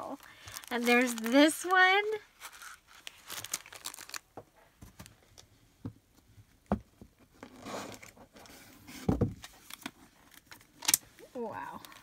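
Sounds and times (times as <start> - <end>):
plastic packaging crinkling: 0.0 - 4.4.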